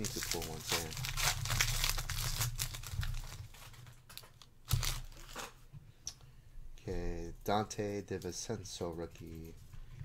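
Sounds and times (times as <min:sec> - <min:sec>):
foil wrapper tearing and crinkling: 0:00.0 - 0:05.5.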